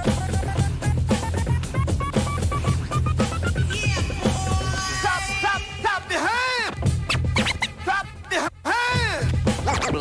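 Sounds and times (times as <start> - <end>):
record scratching: 0.0 - 5.7, 6.6 - 8.0, 9.5 - 10.0
heavy bass beat: 0.0 - 5.8.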